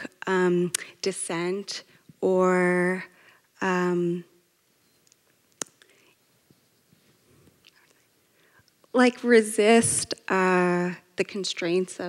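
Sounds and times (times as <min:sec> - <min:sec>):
woman speaking: 0:00.0 - 0:04.3, 0:09.0 - 0:12.0.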